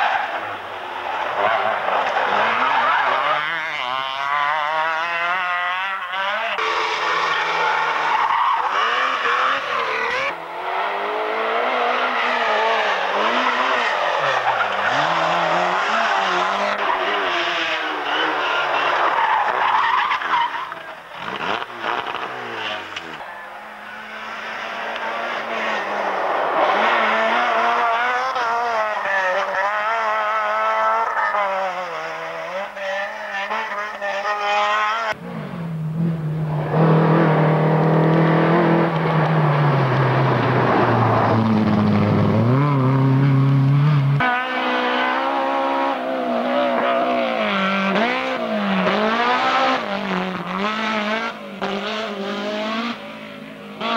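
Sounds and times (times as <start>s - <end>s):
rally car engines revving: 0.0s - 53.9s.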